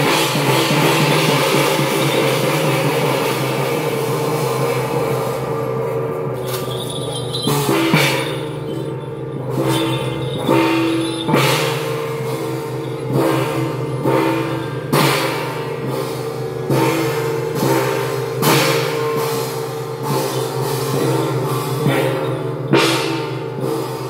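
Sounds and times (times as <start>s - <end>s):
brass hand gongs ringing: 0.0s - 24.0s.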